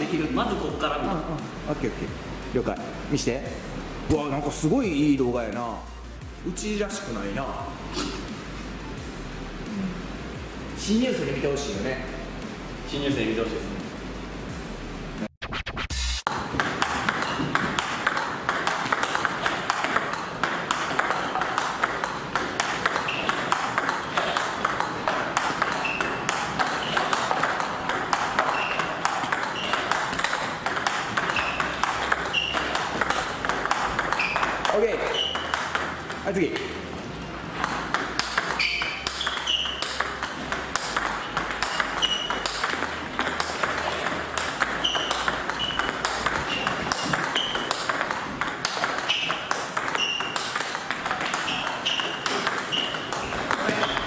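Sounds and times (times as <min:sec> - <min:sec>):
ping pong balls clicking: 0:16.3 - 0:54.0.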